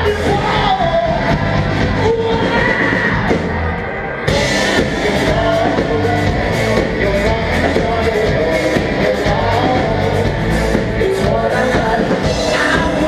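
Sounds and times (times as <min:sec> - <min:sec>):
person singing: 0:00.0 - 0:03.4, 0:04.3 - 0:13.0
live rock band: 0:00.0 - 0:13.0.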